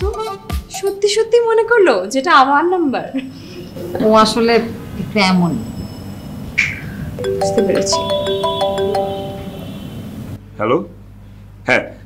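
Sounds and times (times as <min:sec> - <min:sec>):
mobile phone ringtone: 0:07.2 - 0:09.9.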